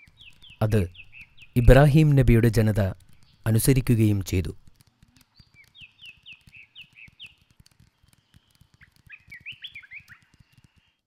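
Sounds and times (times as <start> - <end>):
birds chirping: 0.0 - 11.0
faint crackle: 0.0 - 11.0.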